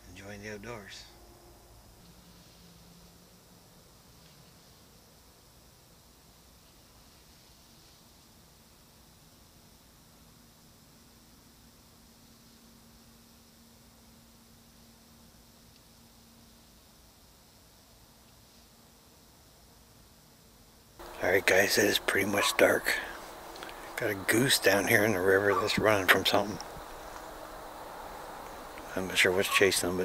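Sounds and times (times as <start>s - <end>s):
faint low hum: 0.0s - 30.0s
faint steady hiss: 0.0s - 30.0s.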